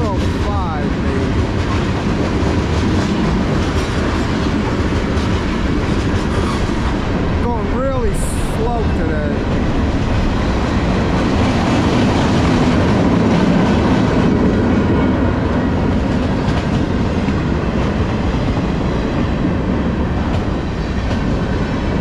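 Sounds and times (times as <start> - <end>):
train wheels rumbling on rail: 0.0 - 22.0
wheels clickety-clack on rail joints: 0.0 - 22.0.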